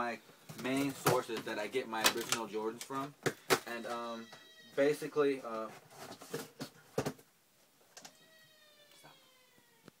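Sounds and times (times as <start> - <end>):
package rustling and clicking: 1.4 - 3.6.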